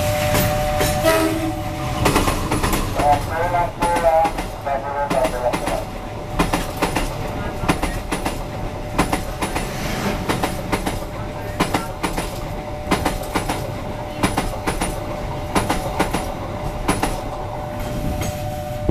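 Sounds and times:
train rushing rumble: 0.0s - 18.9s
train wheels clacking over joints: 2.0s - 18.4s.

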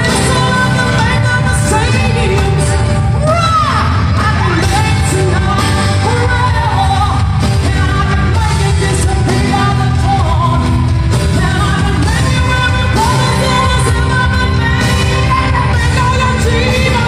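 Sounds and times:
full band playing pop-rock: 0.0s - 17.0s
singer singing into a microphone: 0.0s - 17.0s.

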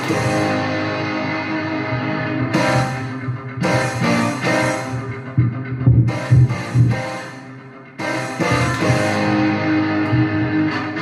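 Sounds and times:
distorted electric guitar riff: 0.0s - 11.0s
heavy chord hits: 0.0s - 11.0s.

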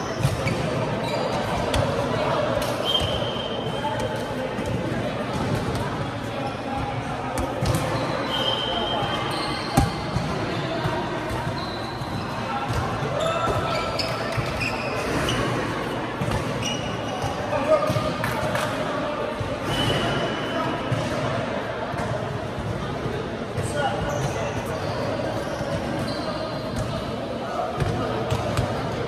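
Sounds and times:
shoes squeaking on court floor: 0.0s - 2.0s, 7.4s - 18.1s, 23.6s - 27.1s.

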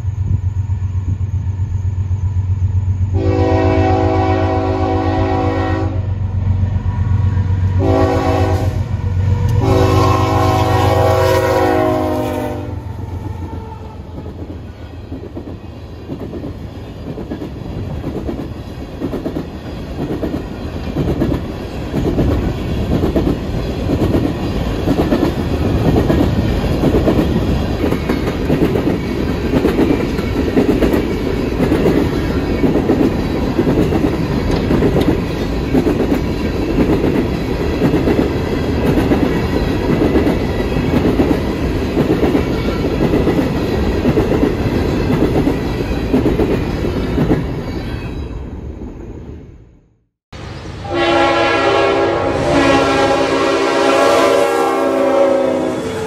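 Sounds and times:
freight train rumbling past: 0.0s - 56.0s
wheels clacking over rail joints: 14.1s - 48.3s.

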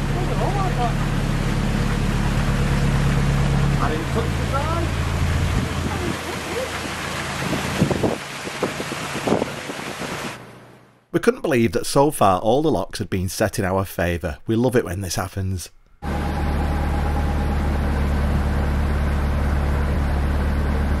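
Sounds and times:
rushing water: 0.0s - 10.4s
diesel engine humming: 0.0s - 11.0s, 13.9s - 21.0s.

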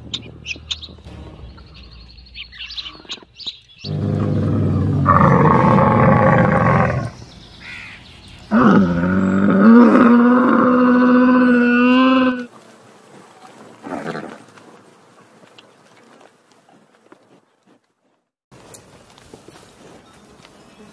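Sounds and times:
loud animal call: 2.6s - 12.5s
camel bellowing: 3.8s - 7.2s, 8.5s - 12.5s.

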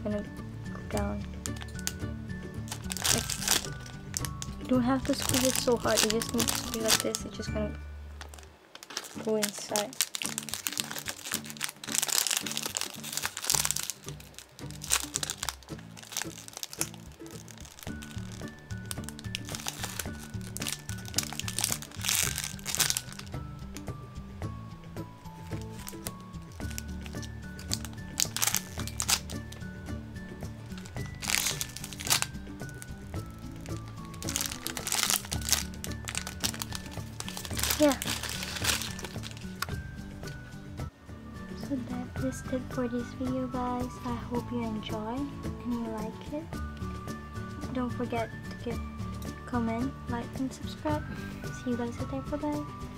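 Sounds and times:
plastic bag crinkling: 1.4s - 2.0s, 2.6s - 7.5s, 8.2s - 23.4s, 25.3s - 29.7s, 30.6s - 40.4s.

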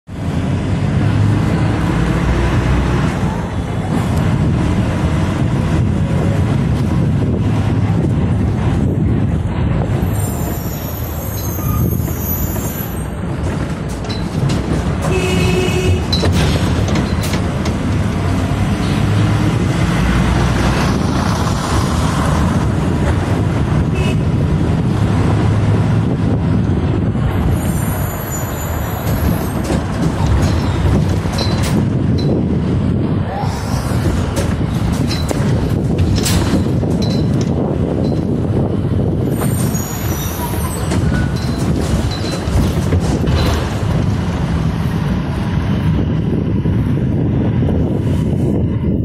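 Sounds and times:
bus engines rumbling: 0.0s - 49.0s.

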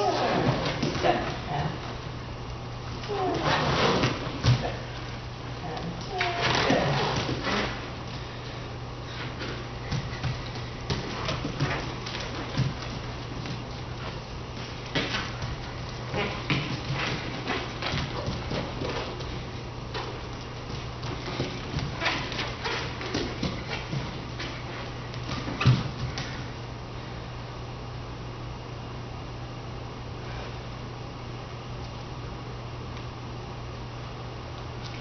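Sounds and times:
steady low hum: 0.0s - 35.0s
bare feet thumping on floor: 6.1s - 26.5s.

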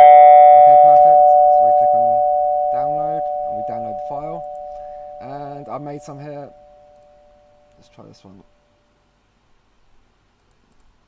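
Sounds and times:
two-tone doorbell chime: 0.0s - 7.5s.

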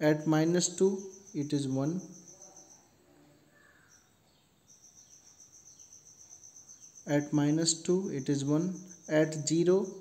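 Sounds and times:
cricket trilling: 0.0s - 10.0s.

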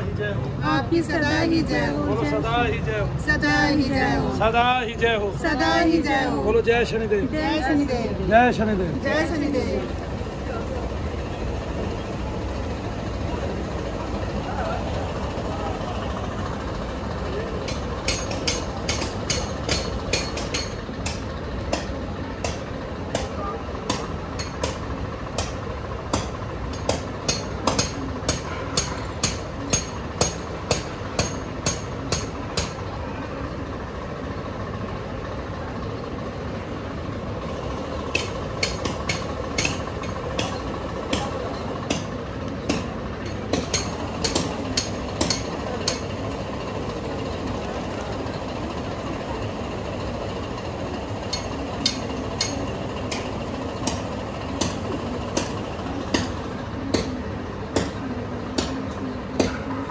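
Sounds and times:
steady background noise: 0.0s - 59.9s.

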